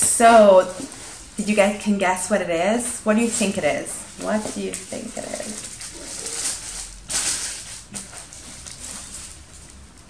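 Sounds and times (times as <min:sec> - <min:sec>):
tissue paper rustling: 0:02.6 - 0:10.0.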